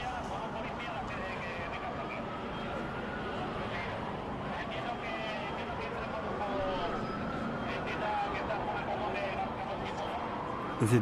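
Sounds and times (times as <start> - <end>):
street traffic noise: 0.0 - 11.0
crowd talking and calling out: 10.8 - 11.0.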